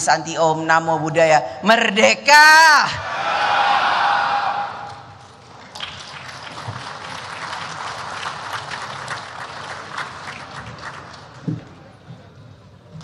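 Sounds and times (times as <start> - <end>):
audience applauding: 5.4 - 11.7.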